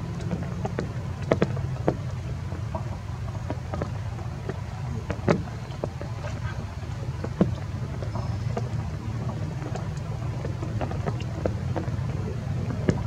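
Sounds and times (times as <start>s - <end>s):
low outdoor rumble: 0.0s - 13.0s
light clicks and taps: 7.2s - 13.0s.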